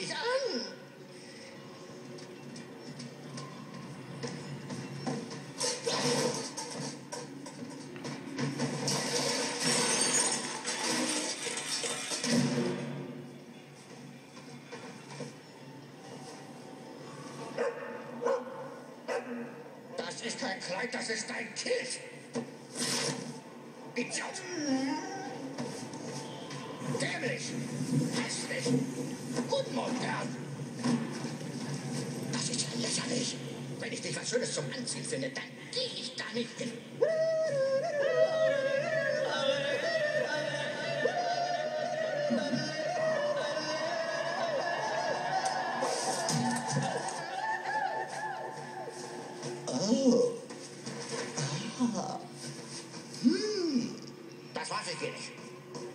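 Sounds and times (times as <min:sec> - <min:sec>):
dog barking: 0:17.6 - 0:19.6
person yodeling through tv speaker: 0:37.0 - 0:45.8, 0:47.2 - 0:49.0.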